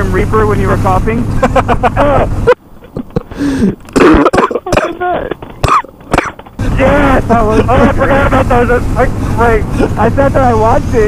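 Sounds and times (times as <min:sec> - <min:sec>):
man coughing hard: 0:02.0 - 0:02.4, 0:03.0 - 0:06.7, 0:07.3 - 0:08.1, 0:09.7 - 0:10.1
man clearing his throat: 0:04.0 - 0:06.6, 0:09.8 - 0:10.1.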